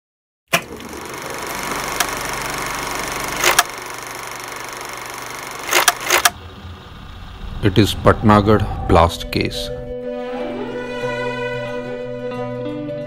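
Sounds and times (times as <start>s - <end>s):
sharp clicks: 1.8s - 2.6s, 3.2s - 3.8s, 4.6s - 6.4s.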